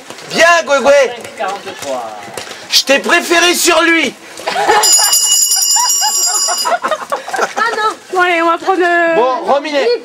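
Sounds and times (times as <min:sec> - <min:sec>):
high bell-like ringing tones: 0:04.8 - 0:06.9.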